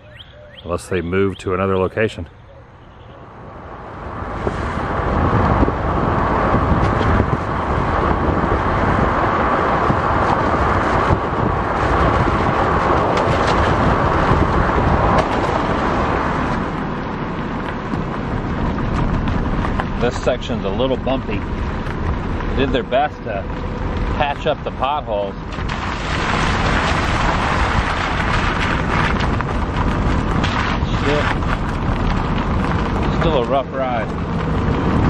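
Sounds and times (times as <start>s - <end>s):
car road and wind noise: 0.0s - 35.0s.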